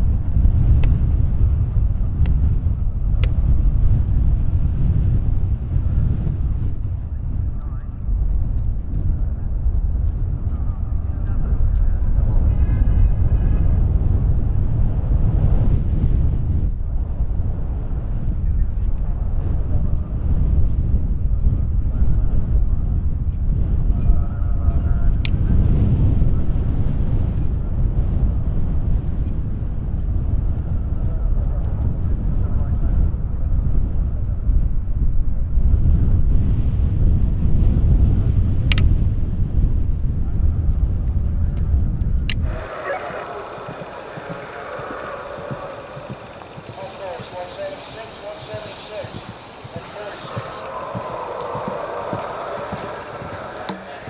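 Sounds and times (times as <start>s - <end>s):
wind buffeting microphone: 0.0s - 54.0s
faint distant voices: 42.4s - 54.0s.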